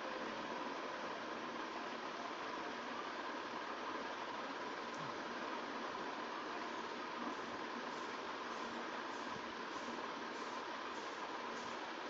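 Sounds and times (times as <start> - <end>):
faint steady hum: 0.0 - 12.0
steady hiss: 2.1 - 12.0.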